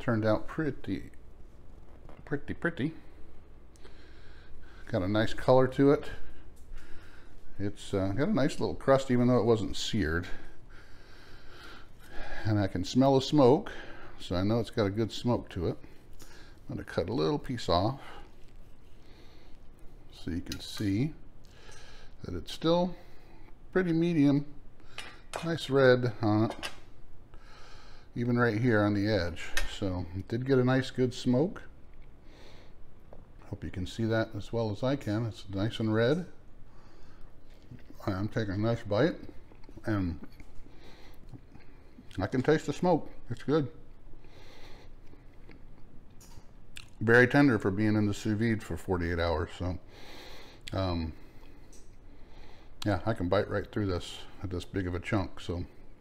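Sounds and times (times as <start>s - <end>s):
soft breath: 2.9s - 4.9s, 6.0s - 7.6s, 10.3s - 12.6s, 18.0s - 20.1s, 27.3s - 28.2s, 44.2s - 45.4s.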